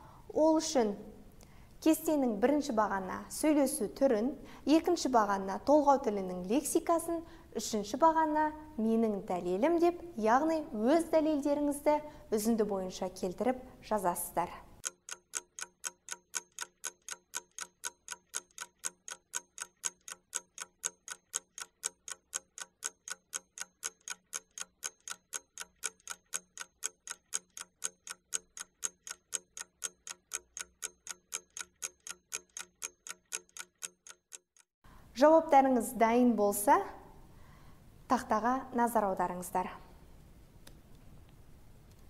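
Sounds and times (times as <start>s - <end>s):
clock ticking: 14.8s - 34.7s.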